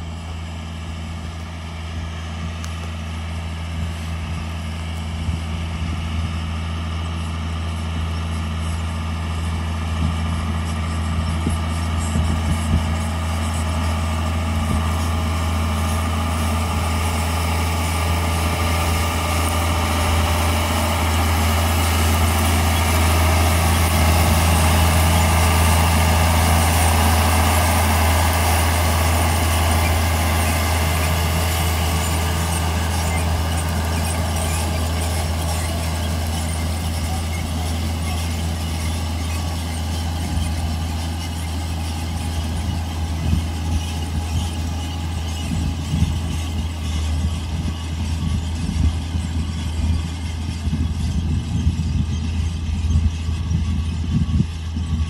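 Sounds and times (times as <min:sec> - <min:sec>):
tractor diesel engine under load: 0:00.0 - 0:55.0.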